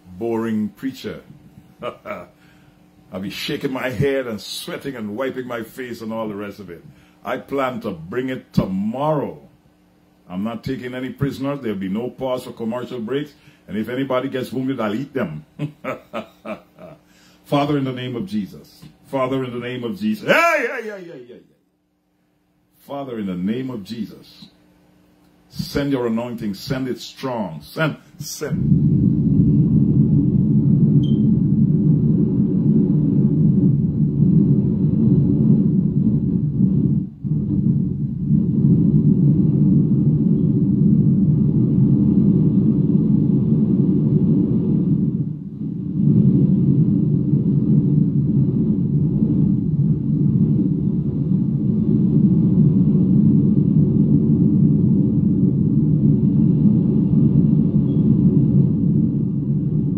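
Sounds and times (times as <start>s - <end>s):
low rumble on phone microphone: 0.0s - 59.9s.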